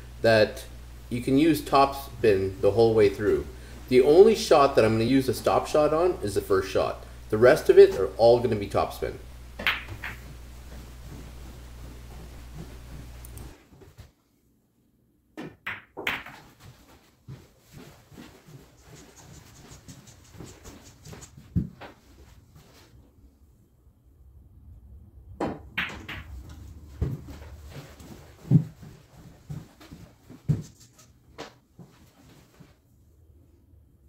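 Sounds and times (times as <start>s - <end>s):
steady low hum: 0.0s - 15.3s, 16.8s - 34.0s
pool balls clacking: 9.6s - 13.1s, 15.4s - 16.7s, 25.4s - 27.2s.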